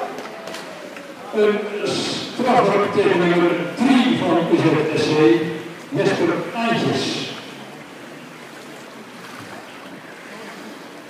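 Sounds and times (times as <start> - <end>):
splashing water in a pool: 7.1 - 11.0.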